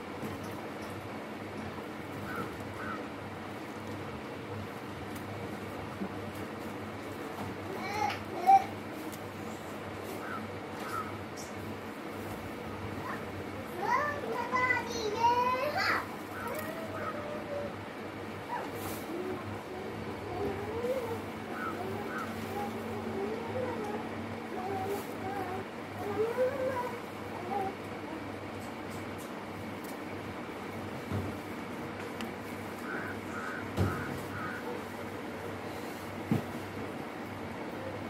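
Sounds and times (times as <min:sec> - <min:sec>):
parakeet chattering calls: 0:32.8 - 0:34.8.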